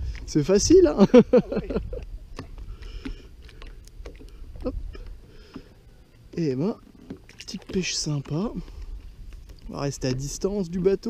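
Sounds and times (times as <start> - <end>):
wind rumble on microphone: 0.0 - 5.2.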